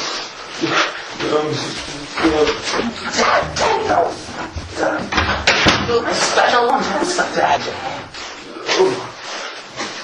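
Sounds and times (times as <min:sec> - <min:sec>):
excited wordless voices: 0:02.0 - 0:08.1.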